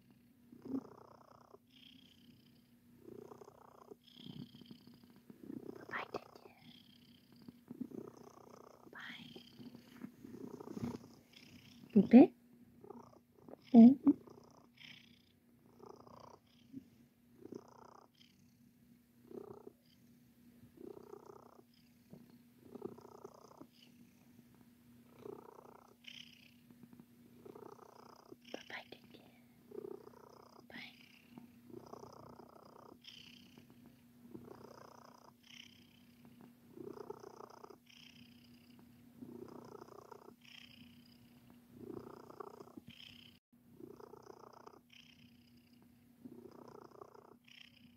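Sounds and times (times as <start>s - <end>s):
cat purring: 0.0s - 47.9s.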